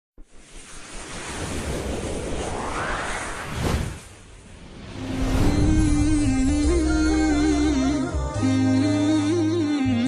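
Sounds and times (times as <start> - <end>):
rising whoosh sound effect: 0.2 - 8.1.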